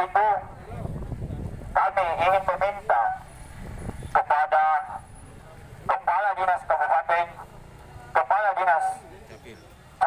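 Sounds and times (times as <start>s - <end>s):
man speaking through megaphone: 0.0s - 3.3s, 4.0s - 10.0s.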